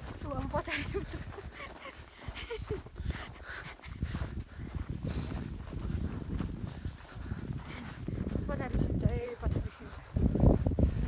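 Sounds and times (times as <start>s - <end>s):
footsteps in snow: 0.0s - 11.0s.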